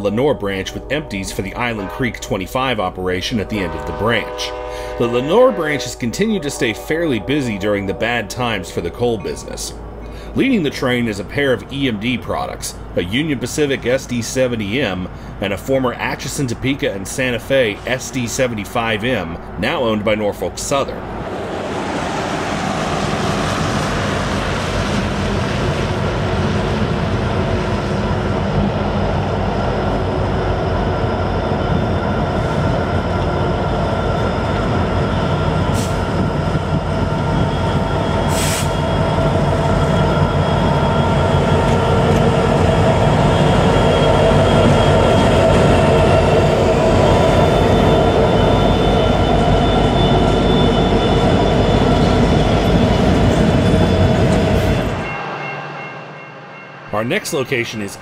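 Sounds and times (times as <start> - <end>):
diesel locomotive engines running: 0.0 - 56.2.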